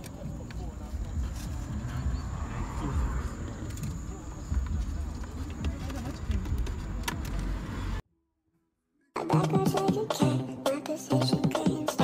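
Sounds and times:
muffled voices: 0.0s - 6.9s
low rumble: 1.0s - 5.4s.

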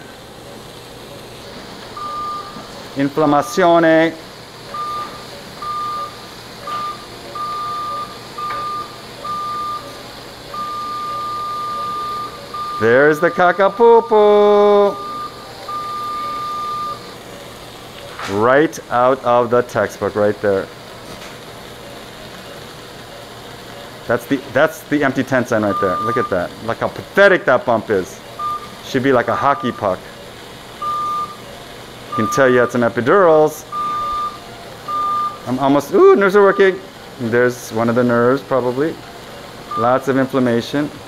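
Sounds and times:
equipment hum and hiss: 0.0s - 41.0s
high-pitched device activation tone: 4.7s - 17.2s.

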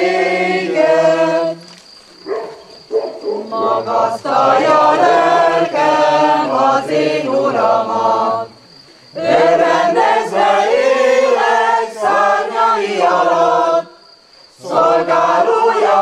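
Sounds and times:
mixed choir singing: 0.0s - 1.7s, 3.3s - 8.6s, 9.2s - 16.0s
choir breaths: 8.4s - 12.0s.

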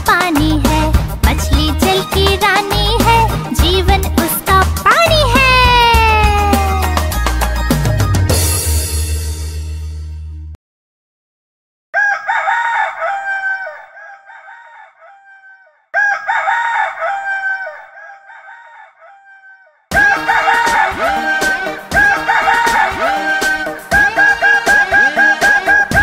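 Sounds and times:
quick-beat music: 0.0s - 8.9s, 19.9s - 26.0s
rooster crowing with echo: 11.9s - 26.0s.

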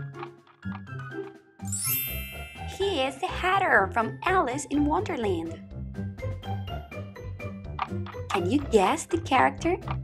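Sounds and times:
light background music: 0.0s - 10.0s
bright chime: 1.7s - 3.4s.

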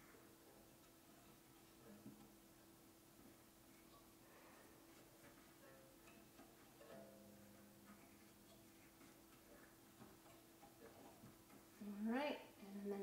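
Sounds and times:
faint steady hum: 0.0s - 13.0s.

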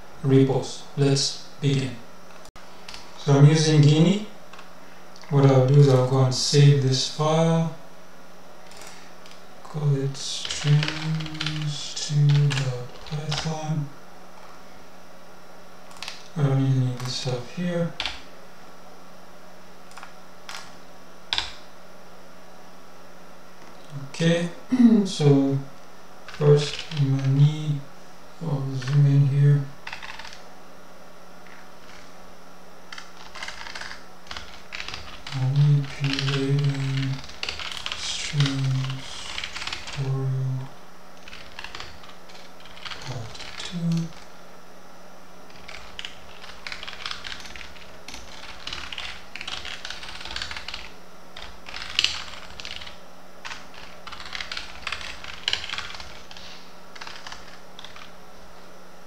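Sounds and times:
computer keyboard typing: 8.6s - 9.4s, 10.4s - 13.6s, 15.9s - 17.2s, 18.0s - 18.3s, 19.9s - 21.6s, 26.3s - 27.4s, 28.6s - 29.1s, 29.8s - 30.4s, 31.4s - 32.1s, 32.9s - 40.2s, 41.2s - 44.3s, 45.5s - 58.1s
short low vocal sounds: 23.9s - 25.7s.

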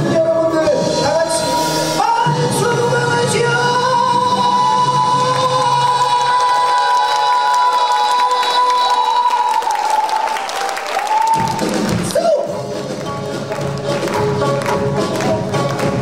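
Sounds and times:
man singing long high note: 1.2s - 9.8s.

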